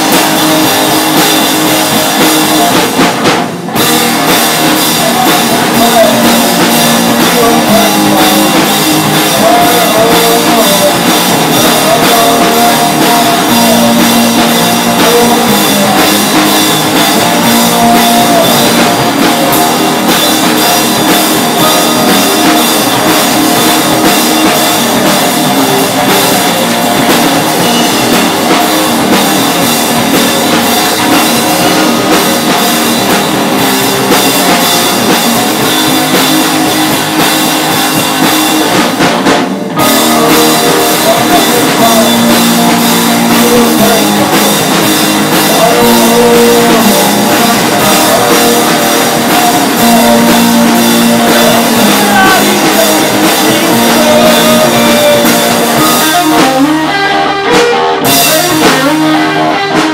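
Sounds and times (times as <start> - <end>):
drum kit: 0.0 - 59.9
electric guitars: 0.0 - 59.9.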